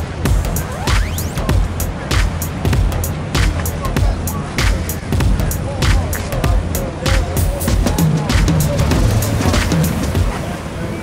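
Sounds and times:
background music with steady beat: 0:00.0 - 0:10.5.

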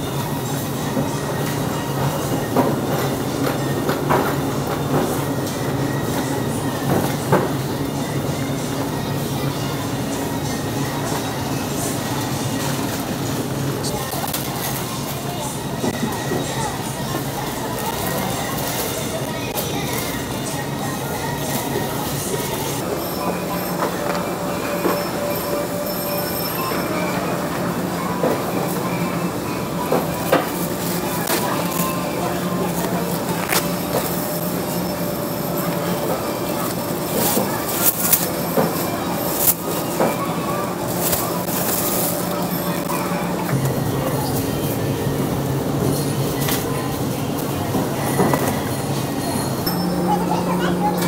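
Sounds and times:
shopping trolley rolling: 0:00.0 - 0:51.0
store hum: 0:00.0 - 0:51.0
plastic bags rustling: 0:30.1 - 0:43.4.

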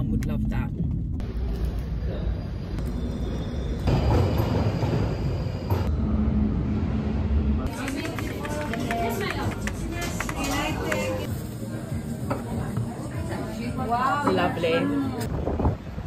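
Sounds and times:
voices in a busy shop: 0:00.0 - 0:04.1, 0:07.4 - 0:16.0
underground train rumbling past: 0:02.3 - 0:10.0.

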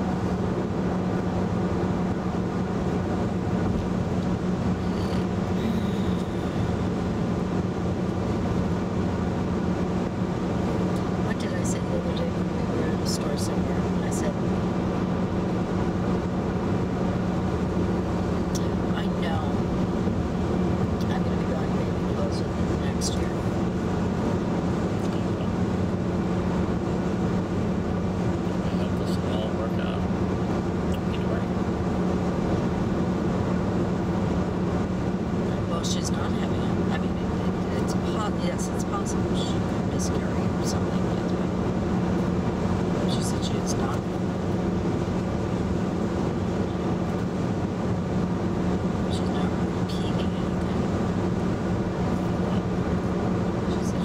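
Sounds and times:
road and tyre noise: 0:00.0 - 0:54.0
low drone: 0:01.8 - 0:09.4.

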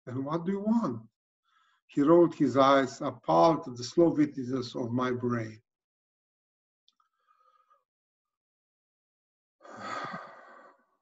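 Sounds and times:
man sighing: 0:09.7 - 0:10.6.

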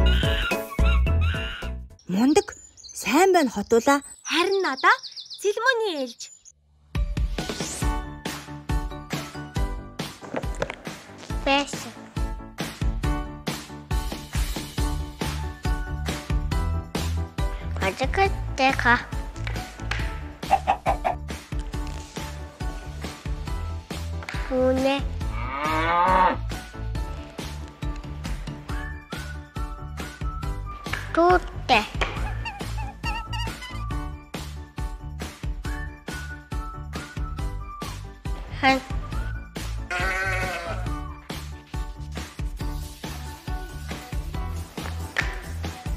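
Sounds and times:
light background music: 0:00.0 - 0:06.3, 0:06.9 - 0:45.9
chicken clucking: 0:20.5 - 0:21.2
sheep bleating: 0:39.8 - 0:41.0.

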